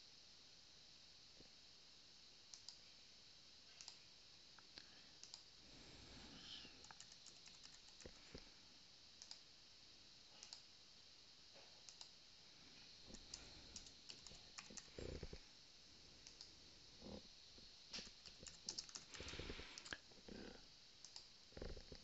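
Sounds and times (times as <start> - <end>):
mouse clicks: 2.5 - 2.8, 3.7 - 4.0, 5.2 - 5.5, 9.2 - 9.4, 10.4 - 10.6, 11.8 - 12.1, 16.2 - 16.5
keyboard typing: 6.8 - 8.4, 13.1 - 15.4, 18.0 - 20.0.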